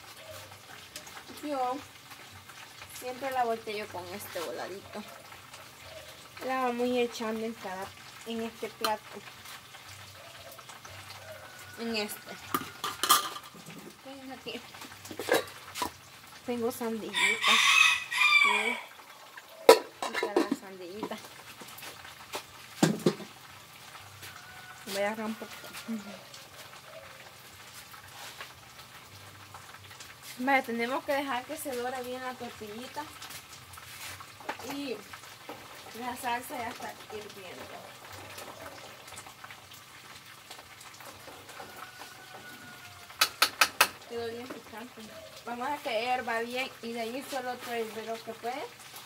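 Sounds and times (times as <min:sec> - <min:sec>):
tortillas frying in hot oil: 0:00.0 - 0:49.0
rooster crowing: 0:10.2 - 0:13.0, 0:17.1 - 0:19.0, 0:24.1 - 0:27.3, 0:41.4 - 0:43.6.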